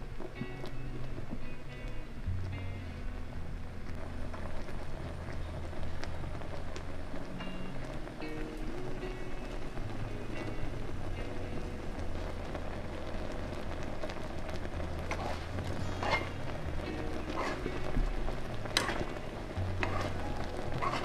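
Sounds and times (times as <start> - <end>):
soft background music: 0.0 - 21.0
syrup boiling in a pan: 0.0 - 21.0.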